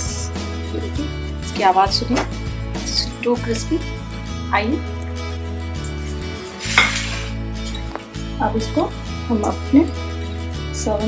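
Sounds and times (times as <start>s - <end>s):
background music with bass line: 0.0s - 11.0s
toast scraping on glass plate: 6.0s - 7.4s.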